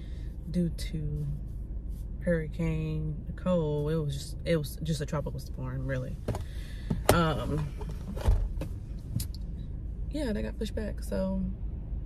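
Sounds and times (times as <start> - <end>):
low rumble inside a car: 0.0 - 12.0
dull thump: 6.2 - 8.8.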